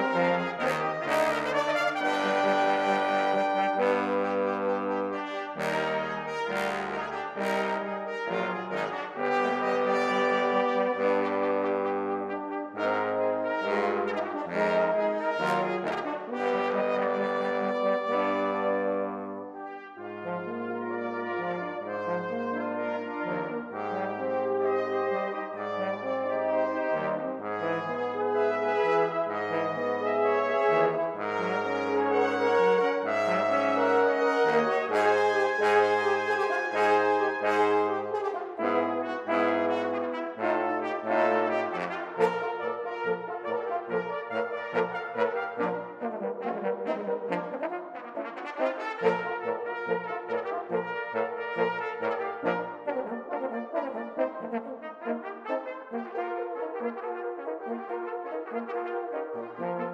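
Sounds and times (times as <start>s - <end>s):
brass quintet playing: 0.0s - 59.9s.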